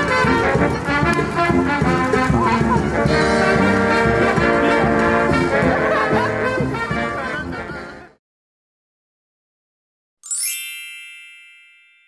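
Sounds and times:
bright bell chime sting: 0:10.2 - 0:12.0.

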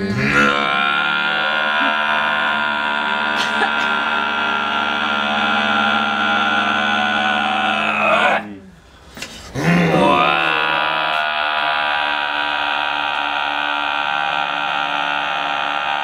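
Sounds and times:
men chanting low drone: 0:00.0 - 0:08.8, 0:09.4 - 0:16.0.

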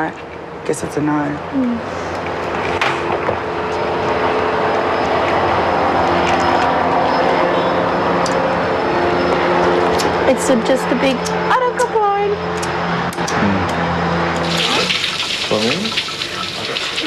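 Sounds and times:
engine drone: 0:00.0 - 0:16.7.

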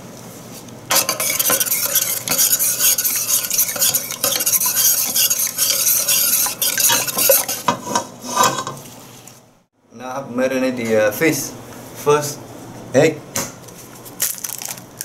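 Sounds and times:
sauce swishing in a pot: 0:00.9 - 0:07.7
metal ladle scraping a pot: 0:00.9 - 0:08.8.

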